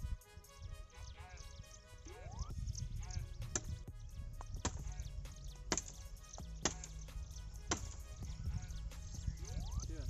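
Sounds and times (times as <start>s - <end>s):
background music: 0.0s - 10.0s
sharp knocks: 4.6s - 4.9s, 5.7s - 6.0s, 6.6s - 6.9s, 7.7s - 8.0s.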